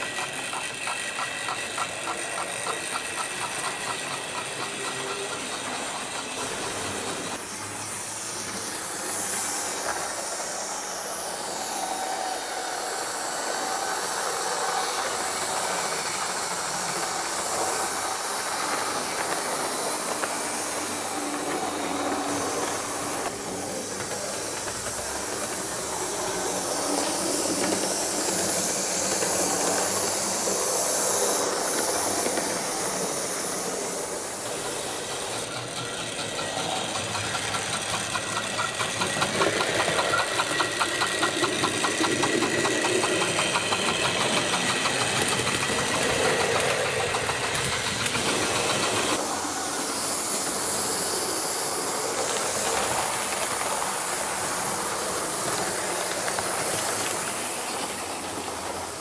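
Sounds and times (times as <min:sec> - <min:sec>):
wheels clicking over rail joints: 0:00.0 - 0:11.2, 0:13.1 - 0:59.0
model train motor whir: 0:00.0 - 0:59.0.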